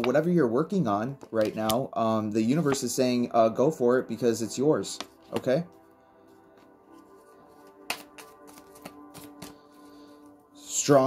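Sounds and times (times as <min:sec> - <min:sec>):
soft background music: 0:00.0 - 0:11.0
cards being shuffled: 0:06.6 - 0:09.6
card snaps: 0:07.9 - 0:09.6.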